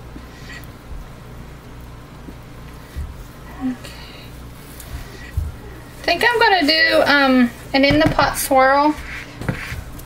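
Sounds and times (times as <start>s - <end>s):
steady low hum: 0.0s - 10.0s
spatula stirring thick batter: 4.6s - 10.0s.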